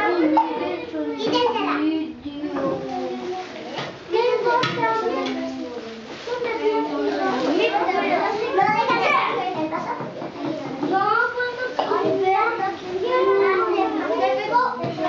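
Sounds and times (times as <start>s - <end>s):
young children chattering: 0.0s - 15.0s.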